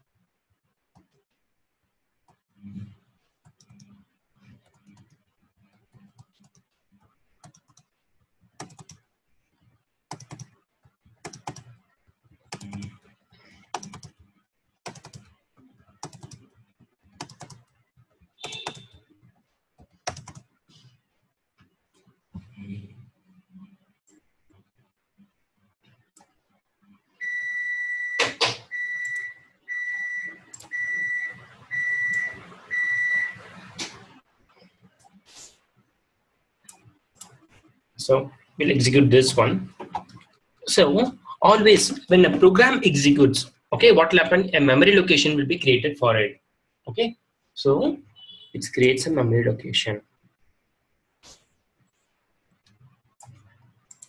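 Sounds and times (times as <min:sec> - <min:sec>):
computer keyboard typing: 0:07.4 - 0:07.9, 0:08.6 - 0:09.1, 0:10.1 - 0:10.6, 0:11.2 - 0:11.8, 0:12.5 - 0:13.0, 0:13.6 - 0:14.2, 0:14.8 - 0:15.3, 0:16.0 - 0:16.5, 0:17.2 - 0:17.8, 0:18.4 - 0:19.0, 0:19.8 - 0:20.5
high-pitched electronic beeps: 0:27.2 - 0:33.5.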